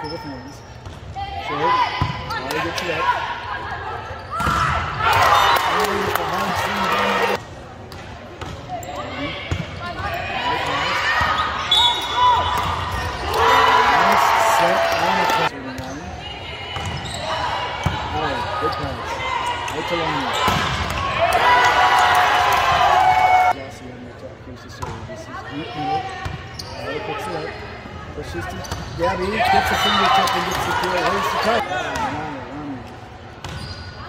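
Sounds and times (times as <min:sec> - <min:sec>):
crowd cheering: 0:04.8 - 0:07.4, 0:11.3 - 0:15.5, 0:19.8 - 0:23.6.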